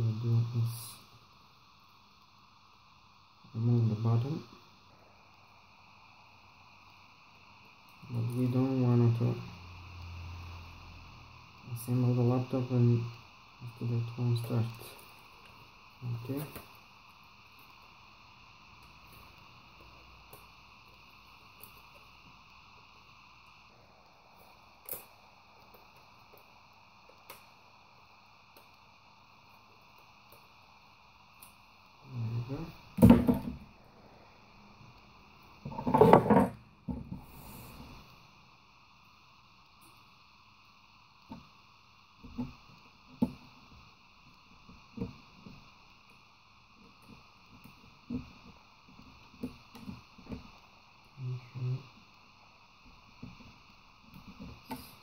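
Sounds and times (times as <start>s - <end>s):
faint steady hiss: 0.0s - 55.0s.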